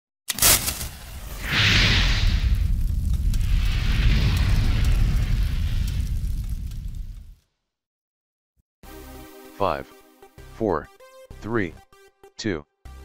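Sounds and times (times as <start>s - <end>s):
hissing rush: 0.3s - 7.3s
sharp crack: 0.3s - 7.5s
heavy boom: 0.9s - 7.4s
low rumble: 0.9s - 7.4s.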